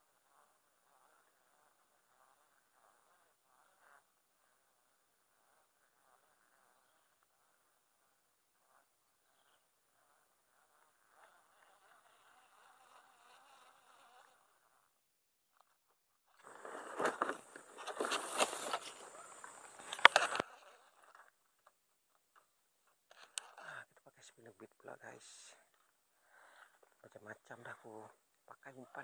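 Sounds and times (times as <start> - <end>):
faint insect buzz: 0.0 - 29.0
fishing gear rustling and clicking: 16.4 - 21.6.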